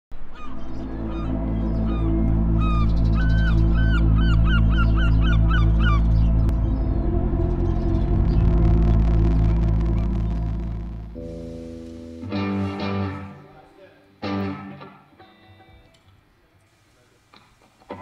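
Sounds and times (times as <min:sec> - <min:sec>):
low electronic drone with bass pulse: 0:00.2 - 0:13.4
seabird squawking: 0:00.3 - 0:06.5.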